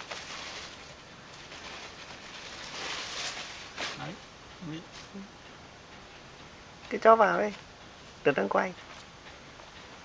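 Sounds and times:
low hiss: 0:00.0 - 0:10.0.

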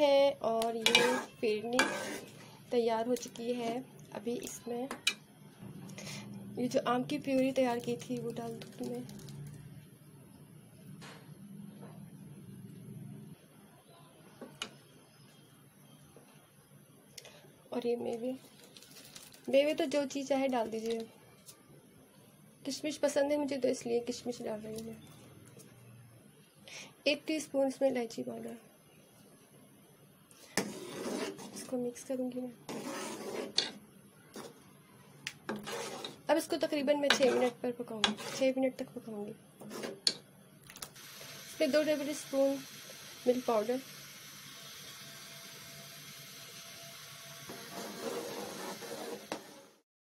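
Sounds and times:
spoon stirring thick food in pot: 0:00.6 - 0:02.4, 0:32.6 - 0:33.8, 0:35.3 - 0:36.3, 0:37.0 - 0:38.6.

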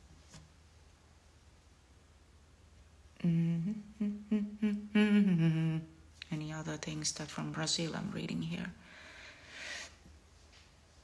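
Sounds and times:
woman humming: 0:03.2 - 0:06.0
woman speaking: 0:06.2 - 0:08.8.

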